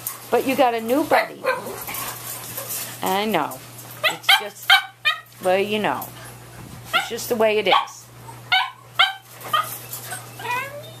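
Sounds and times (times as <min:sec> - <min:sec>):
dog whining: 0:08.2 - 0:11.0.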